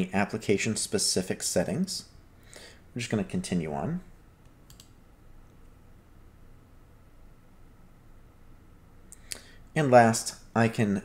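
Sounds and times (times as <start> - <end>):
computer mouse clicks: 4.4 - 5.0.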